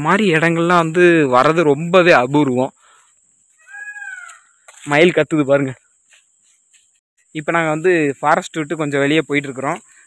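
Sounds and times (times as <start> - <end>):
peacock call: 3.5 - 4.8.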